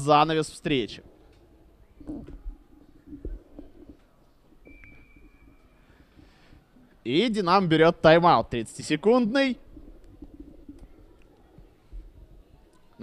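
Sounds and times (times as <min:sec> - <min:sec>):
faint steady high tone: 0:04.5 - 0:06.3.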